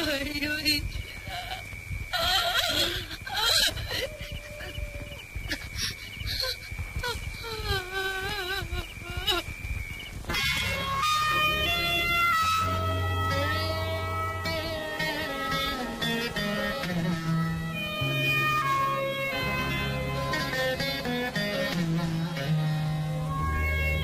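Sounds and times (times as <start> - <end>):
woman sobbing and wailing: 1.1 - 9.5
steady high-pitched tone: 8.0 - 24.0
film score on plucked strings: 10.3 - 24.0.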